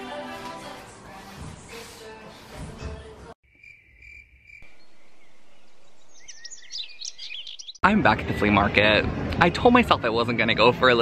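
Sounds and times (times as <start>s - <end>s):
background music: 0.0s - 3.4s
birds chirping: 3.6s - 7.8s.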